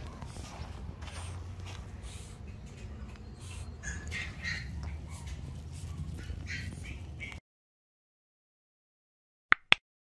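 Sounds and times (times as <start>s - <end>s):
puppy whimpering: 2.8s - 7.4s.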